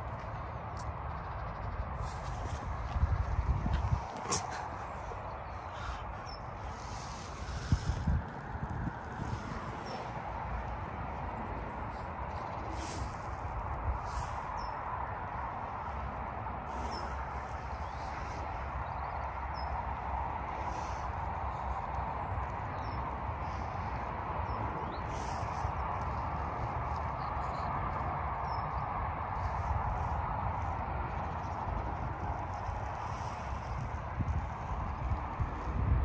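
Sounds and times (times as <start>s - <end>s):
steady background hum: 0.0s - 36.0s
wind rumble on microphone: 0.0s - 36.0s.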